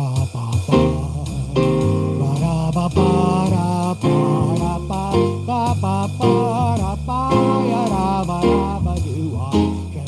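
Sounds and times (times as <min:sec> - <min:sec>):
slow blues on keyboard: 0:00.7 - 0:10.0.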